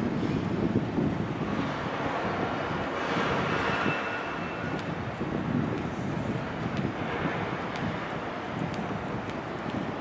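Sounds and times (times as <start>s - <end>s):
city street traffic: 0.0s - 10.0s
wind on microphone: 0.0s - 10.0s.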